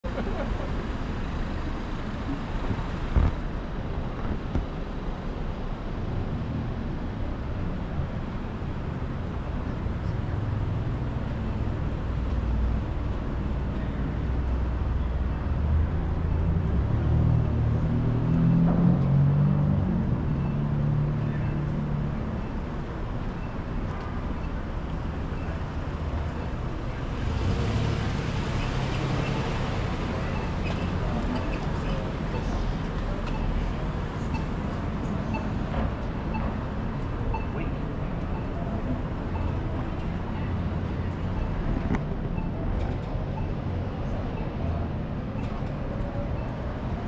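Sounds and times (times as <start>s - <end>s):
traffic rumble: 0.0s - 47.0s.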